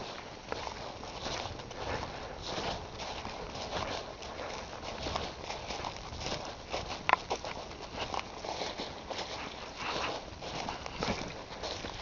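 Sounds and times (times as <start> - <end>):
footsteps on dry leaves: 0.0 - 12.0.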